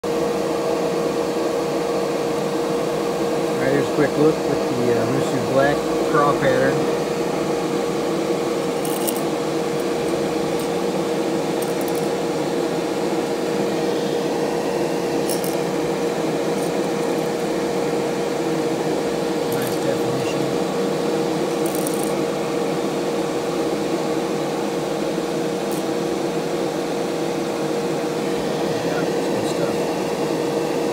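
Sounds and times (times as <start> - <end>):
ventilation fan humming: 0.0 - 30.9.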